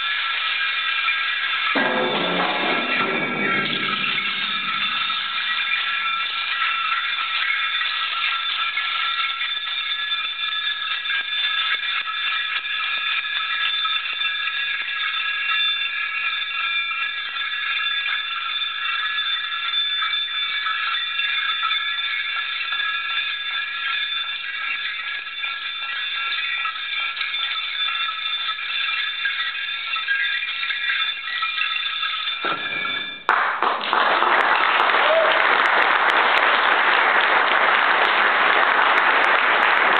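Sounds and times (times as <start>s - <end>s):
small metal bells jingling: 0.0s - 33.3s.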